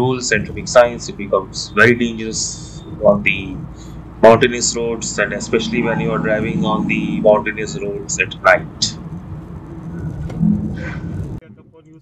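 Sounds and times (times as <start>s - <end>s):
car cabin engine and tyre rumble: 0.1s - 11.4s.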